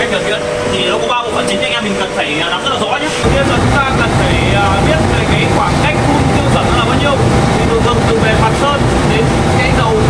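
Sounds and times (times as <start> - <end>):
man talking: 0.0 - 10.0
low rumble of machinery: 3.2 - 10.0.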